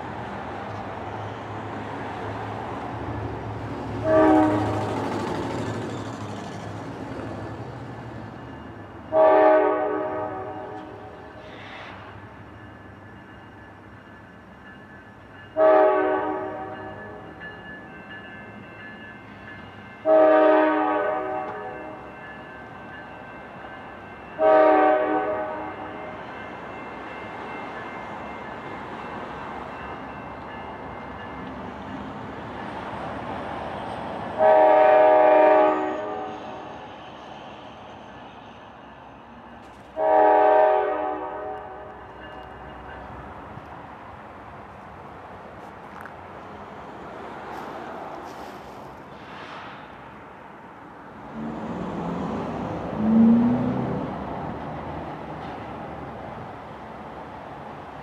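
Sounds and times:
locomotive air horn blasts: 4.0s - 4.8s, 9.1s - 11.1s, 15.6s - 17.0s, 20.0s - 22.0s, 24.4s - 26.0s, 34.4s - 36.3s, 40.0s - 42.0s.

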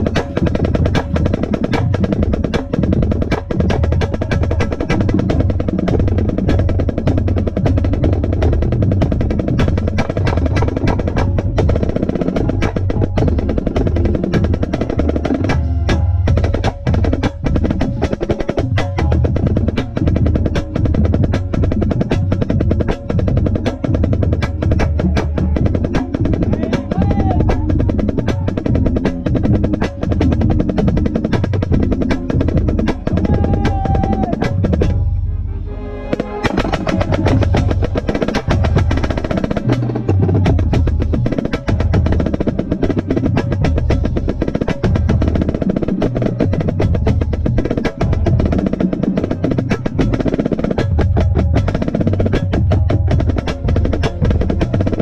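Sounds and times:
marching snare drum rolls: 0.0s - 35.2s, 36.1s - 55.0s
marching band playing: 0.0s - 55.0s.

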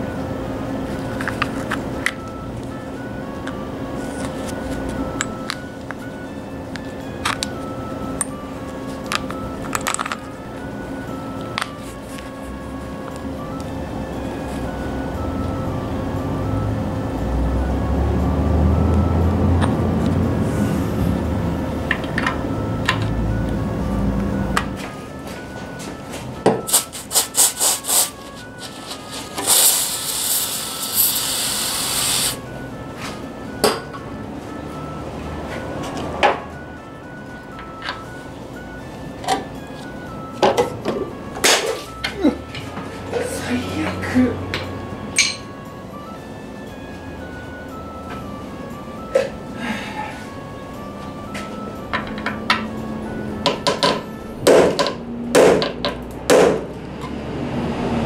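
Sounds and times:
aerosol spray can hissing: 26.7s - 32.4s
hammer striking a steel punch: 54.5s - 56.7s.

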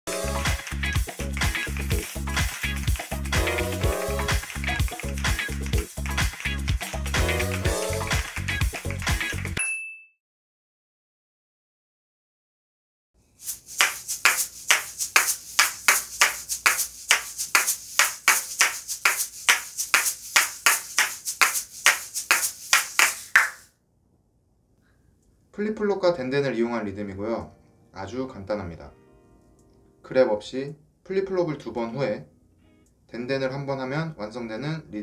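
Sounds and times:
music: 0.1s - 9.6s, 26.9s - 30.6s, 31.5s - 35.0s
shakers rattling rhythmically: 0.1s - 9.6s, 13.4s - 23.7s.

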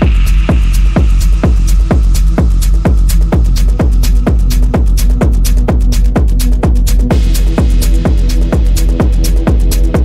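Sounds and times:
kick drum: 0.0s - 10.0s
low bass drone: 0.0s - 10.0s
techno track: 0.0s - 10.0s
ticking hi-hats: 0.0s - 10.0s.

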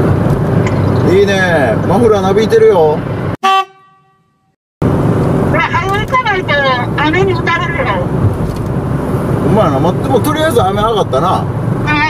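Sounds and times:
road traffic noise: 0.0s - 4.2s, 4.8s - 12.0s.

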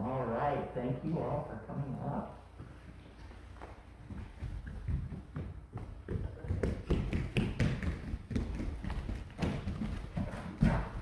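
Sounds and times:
children's footsteps: 2.6s - 11.0s.

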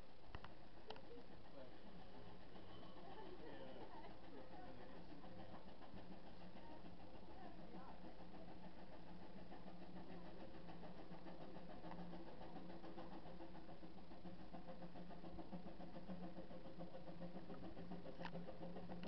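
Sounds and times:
steam locomotive low hum: 0.0s - 19.0s.

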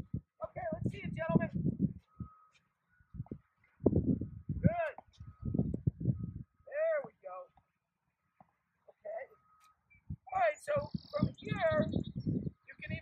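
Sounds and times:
indistinct voices talking: 0.0s - 7.8s, 8.8s - 13.0s.

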